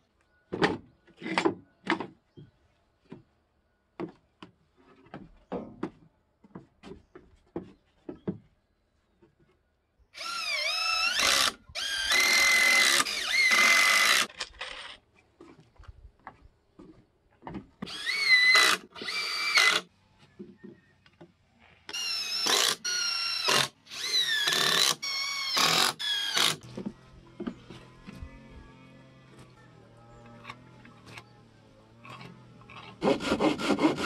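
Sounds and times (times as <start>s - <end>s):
cordless drill driving screws: 10.2s - 15.0s, 17.8s - 19.9s, 21.9s - 28.2s.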